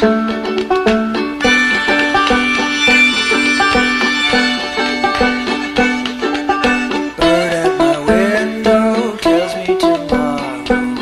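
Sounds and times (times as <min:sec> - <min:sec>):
plucked-string notes: 0:00.0 - 0:11.0
held higher tones: 0:01.2 - 0:08.2.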